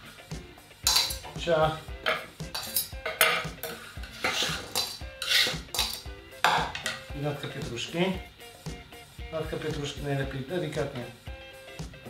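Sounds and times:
knife scraping metal bowl: 2.0s - 7.1s.

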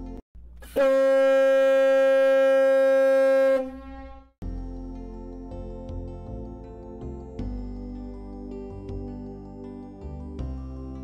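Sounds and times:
ship's horn blast: 0.6s - 4.3s.

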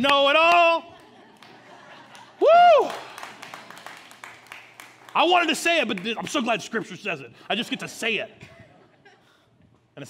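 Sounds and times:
scattered clapping: 0.0s - 6.5s.

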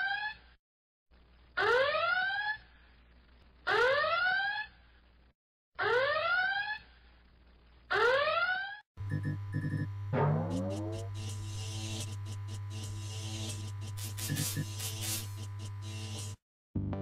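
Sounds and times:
low electronic hum: 9.0s - 16.1s.

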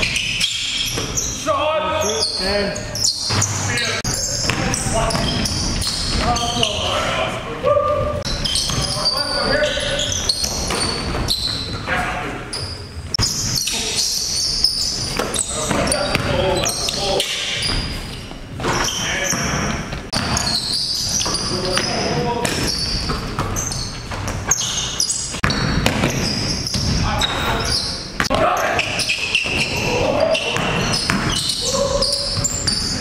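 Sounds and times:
sneakers squealing on court: 0.0s - 33.0s
players' voices: 0.9s - 23.7s, 26.0s - 33.0s
basketball bouncing on wooden floor: 4.4s - 6.4s, 7.9s - 8.9s, 18.6s - 24.6s, 25.3s - 27.0s, 30.5s - 31.6s
basketball bouncing on hardwood floor: 19.4s - 20.5s, 25.4s - 27.0s, 30.6s - 31.5s.

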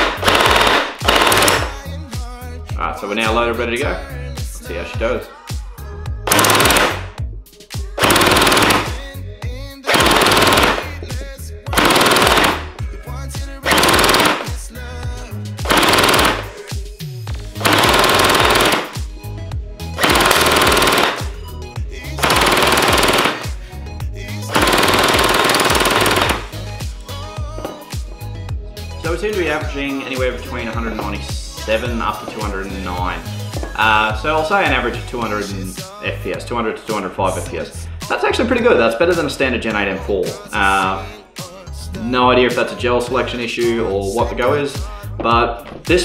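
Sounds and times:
gel blaster firing full-auto bursts: 0.0s - 1.8s, 6.3s - 7.1s, 8.0s - 9.0s, 9.9s - 11.0s, 11.8s - 12.7s, 13.7s - 14.5s, 15.7s - 16.6s, 17.6s - 19.0s, 20.0s - 21.4s, 22.2s - 23.6s, 24.5s - 26.5s.

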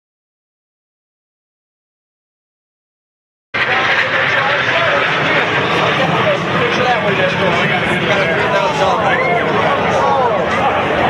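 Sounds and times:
jet aircraft flying overhead: 3.6s - 11.0s.

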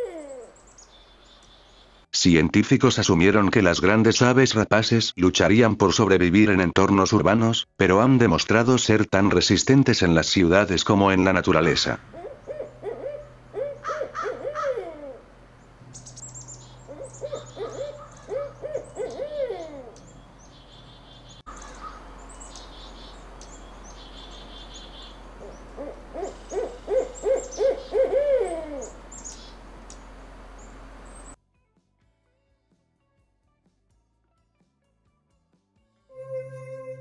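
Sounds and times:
owl hooting: 0.0s - 1.9s, 11.6s - 31.4s, 36.1s - 37.0s.

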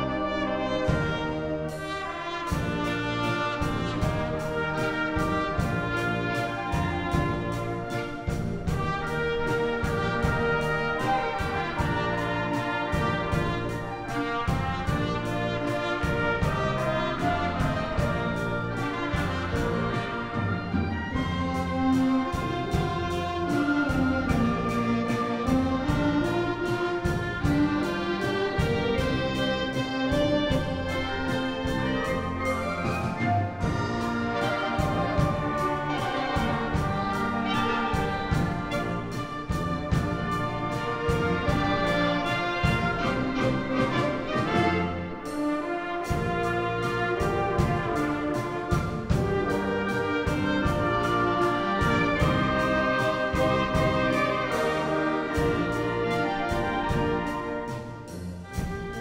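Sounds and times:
concert band playing: 0.0s - 59.0s.

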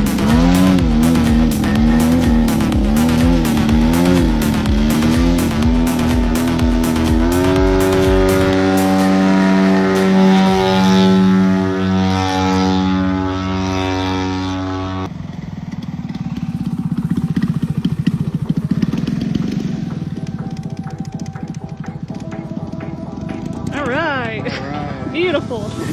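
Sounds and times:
model plane engine: 0.0s - 25.1s.

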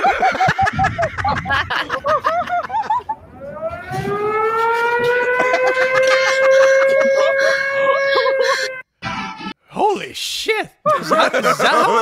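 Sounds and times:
steady electronic alarm tone: 2.8s - 9.6s.

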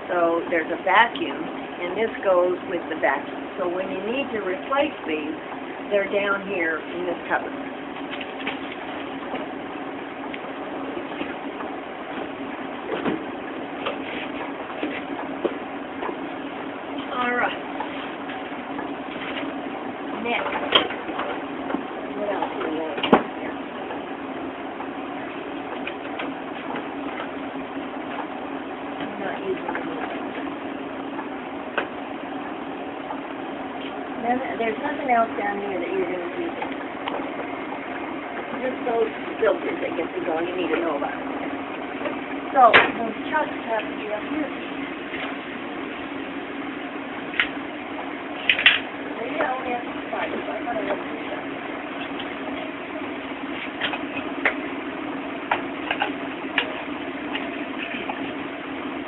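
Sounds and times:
steady mechanical hum: 0.0s - 59.0s
low talk: 22.1s - 23.6s, 34.2s - 36.8s, 38.4s - 41.3s, 49.1s - 51.6s.

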